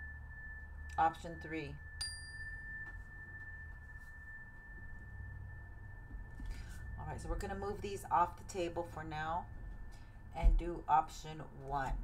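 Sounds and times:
struck metal chime ringing: 0:00.0 - 0:10.3.

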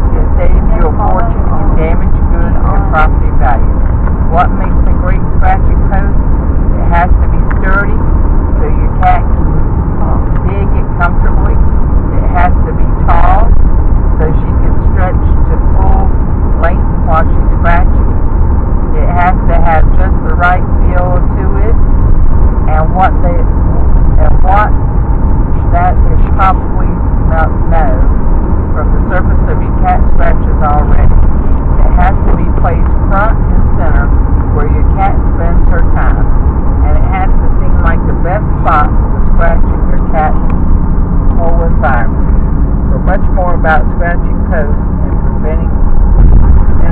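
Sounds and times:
indistinct voices talking: 0:00.0 - 0:13.6, 0:14.2 - 0:18.1, 0:18.9 - 0:21.8, 0:22.6 - 0:24.8, 0:25.4 - 0:45.9
car road and engine rumble: 0:00.0 - 0:46.9.

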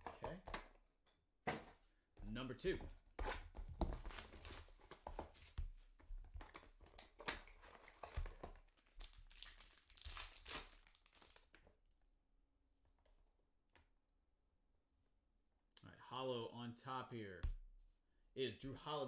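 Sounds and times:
plastic wrap tearing and crinkling: 0:07.0 - 0:11.6.

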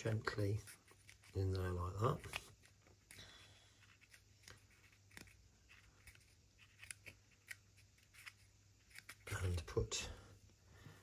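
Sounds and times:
fingers handling card pieces: 0:00.0 - 0:03.2, 0:03.8 - 0:09.6.

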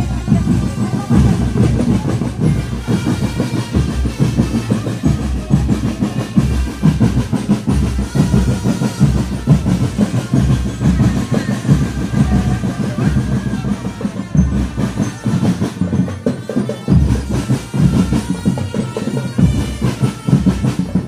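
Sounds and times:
marching drum band drumming: 0:00.0 - 0:21.0.

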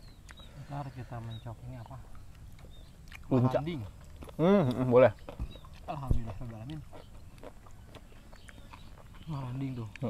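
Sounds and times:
chewing mouth sounds: 0:00.0 - 0:00.7, 0:01.3 - 0:10.0.

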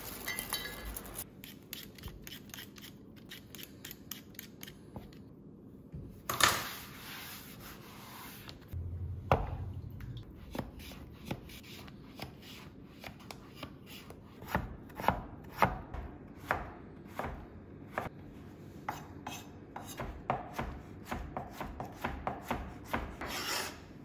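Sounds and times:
knife chopping on wooden board: 0:18.9 - 0:23.4
knife scraping board: 0:22.9 - 0:23.9.

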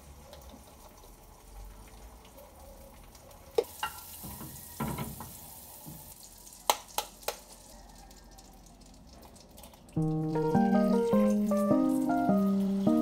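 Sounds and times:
food sizzling in a frying pan: 0:00.0 - 0:02.3, 0:03.0 - 0:13.0.

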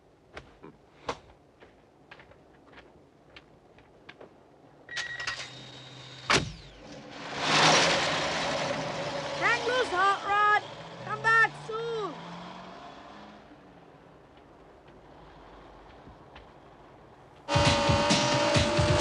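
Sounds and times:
car engine starting: 0:05.5 - 0:14.0, 0:15.0 - 0:19.0
car pulling away: 0:05.5 - 0:19.0.

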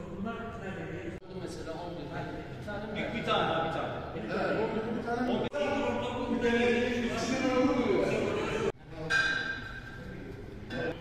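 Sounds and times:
indistinct voices: 0:02.6 - 0:11.0.

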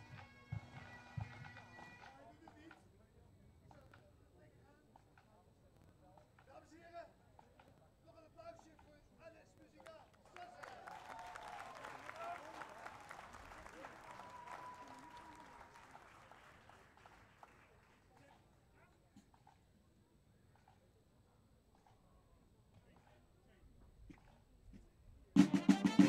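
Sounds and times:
distant crowd applause: 0:09.8 - 0:18.5.

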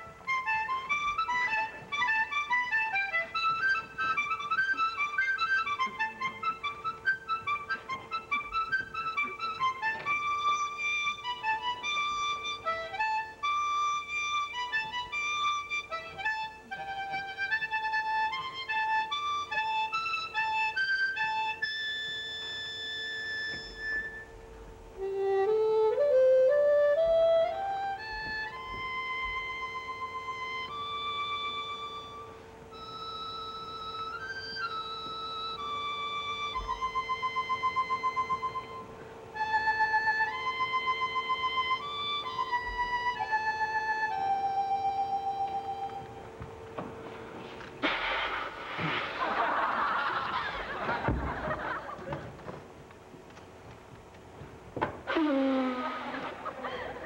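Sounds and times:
harmonica ensemble playing: 0:00.0 - 0:51.9, 0:54.9 - 0:57.0.

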